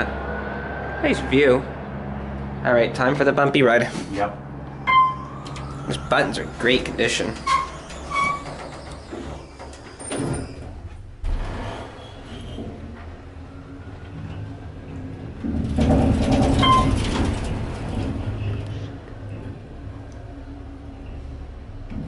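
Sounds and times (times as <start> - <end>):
elevator car rumbling and rattling: 0.0 - 22.0
elevator doors sliding shut: 4.8 - 22.0.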